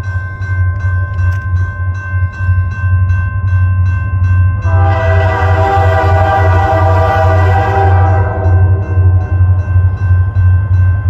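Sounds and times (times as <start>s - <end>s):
diesel locomotive engine drone: 0.0s - 11.0s
locomotive air horn: 4.7s - 9.5s.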